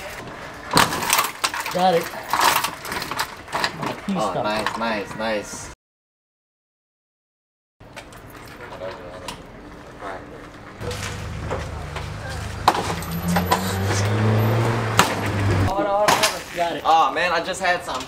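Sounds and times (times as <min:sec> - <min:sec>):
faint voices: 0:08.6 - 0:14.1
vehicle engine running: 0:10.8 - 0:15.7
sharp knocks: 0:12.6 - 0:14.0, 0:14.9 - 0:16.3.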